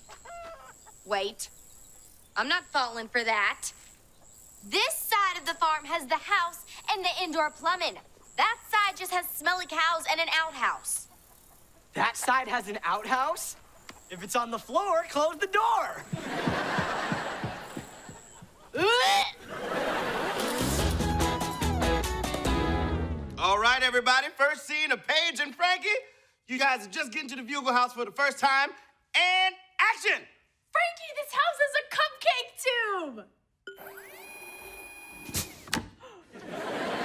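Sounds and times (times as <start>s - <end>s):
studio audience laughing: 16.2s - 18.7s, 19.4s - 21.0s, 36.3s - 37.0s
electronic whirring tone: 33.7s - 35.7s.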